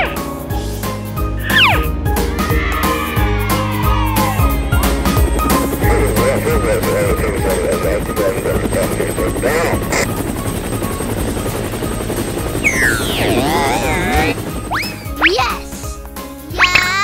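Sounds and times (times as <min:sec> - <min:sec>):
background music: 0:00.0 - 0:17.0
cartoon helicopter rotor chopping: 0:04.2 - 0:17.0
warbling pitch glides: 0:12.6 - 0:15.6.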